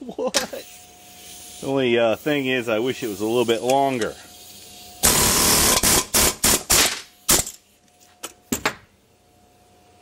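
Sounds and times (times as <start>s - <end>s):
pneumatic air hammer: 4.0s - 7.6s.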